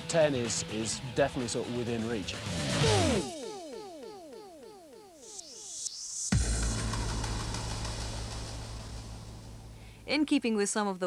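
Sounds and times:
deep electronic boom: 6.3s - 10.1s.

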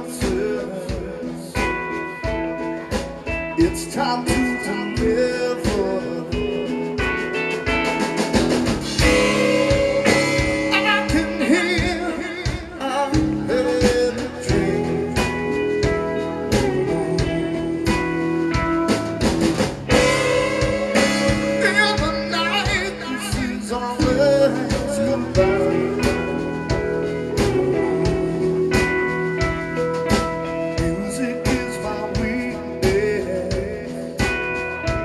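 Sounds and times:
person singing: 0.0s - 8.2s, 8.9s - 19.3s, 19.9s - 35.0s
drum kit beat: 0.0s - 35.0s
electric guitar: 0.0s - 35.0s.

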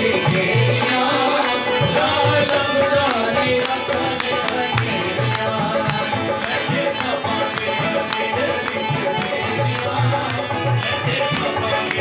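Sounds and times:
hand-drum beats: 0.0s - 12.0s
harmonium: 0.0s - 12.0s
men singing into microphones: 0.0s - 12.0s
rhythmic hand clapping: 0.0s - 12.0s.

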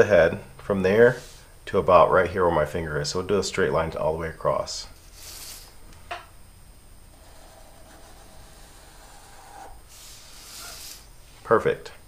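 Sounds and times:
soft hiss: 0.0s - 12.0s
marker squeaking on paper: 5.1s - 5.7s, 7.2s - 11.1s.

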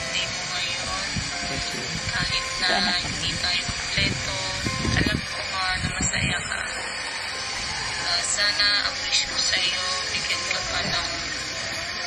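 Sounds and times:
background music: 0.0s - 12.0s
person talking: 2.6s - 3.5s.

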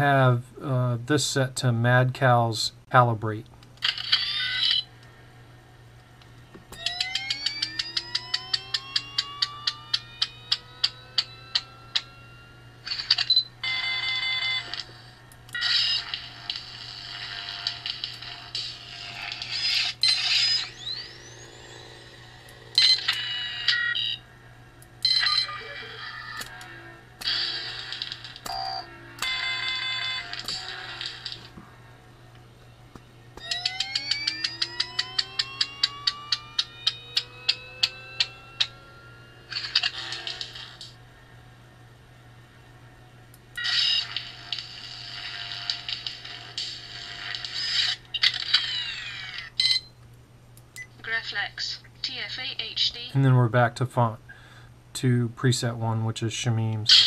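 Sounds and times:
lightsaber low hum: 4.2s - 13.6s, 14.6s - 49.5s
rising electronic ticks: 6.2s - 12.2s, 32.9s - 39.2s.

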